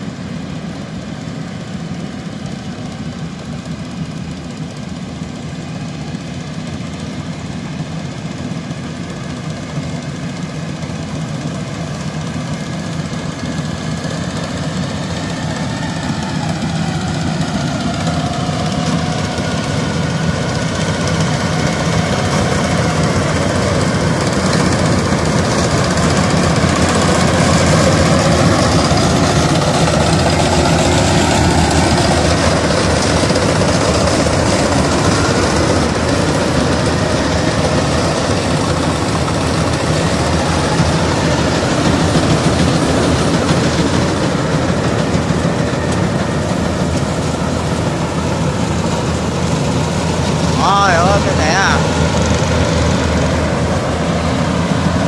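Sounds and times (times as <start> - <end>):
harvester diesel engines running: 0.0 - 55.0.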